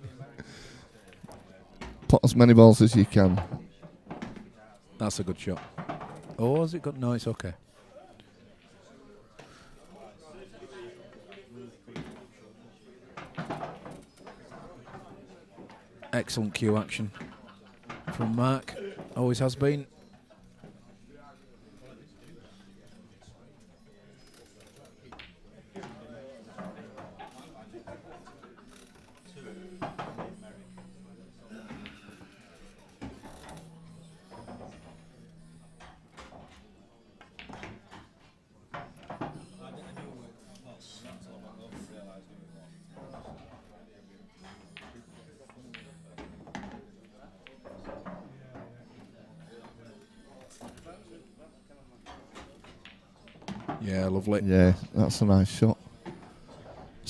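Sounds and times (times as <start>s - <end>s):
faint background voices: 0.0s - 6.6s, 7.6s - 57.0s
background talk and murmur: 0.0s - 57.0s
pool balls clacking: 5.3s - 6.7s, 33.0s - 40.4s, 41.0s - 54.3s.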